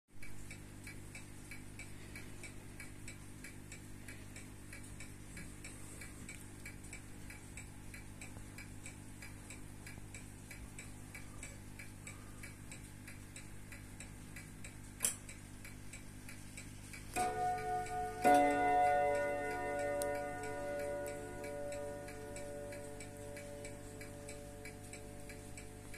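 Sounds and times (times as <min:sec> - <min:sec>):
wristwatch ticking: 0:00.2 - 0:25.9
sharp click: 0:14.9 - 0:15.4.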